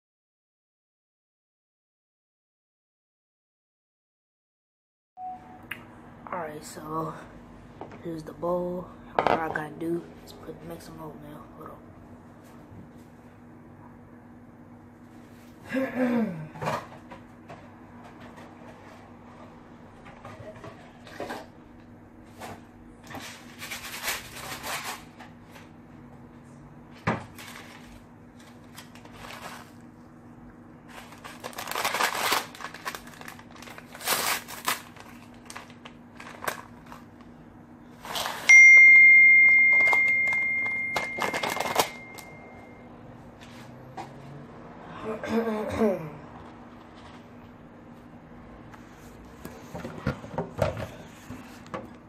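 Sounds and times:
loud bell-like ding: 38.5s - 42.8s.

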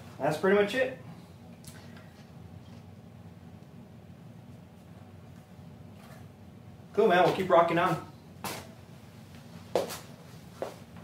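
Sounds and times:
low steady background noise: 0.0s - 11.0s.

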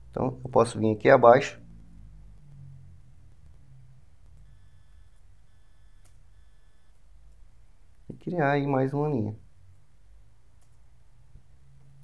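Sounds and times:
low hum: 0.0s - 12.0s
high electronic whine: 1.4s - 7.3s.

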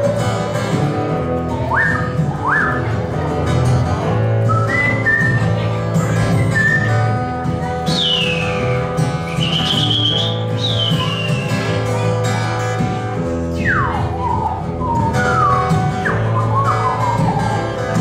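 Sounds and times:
acoustic guitar playing: 0.0s - 18.0s
sliding whistled notes: 6.2s - 11.8s, 13.5s - 18.0s.

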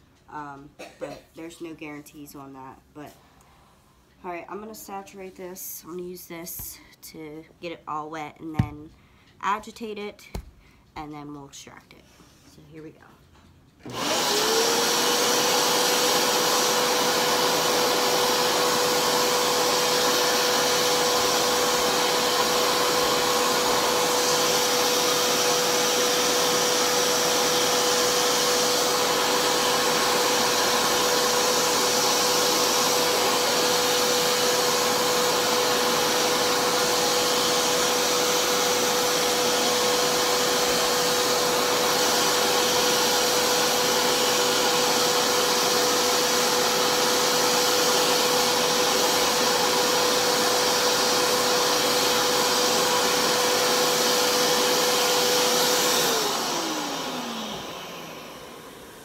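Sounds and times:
carpet cleaner motor whining: 13.8s - 59.0s.

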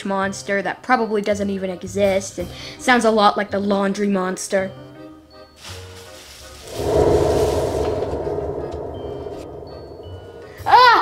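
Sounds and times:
dramatic music sting: 6.6s - 11.0s.

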